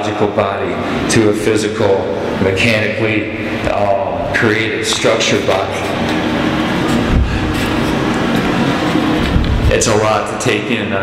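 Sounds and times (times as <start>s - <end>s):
steady rumbling with low hum: 0.0s - 11.0s.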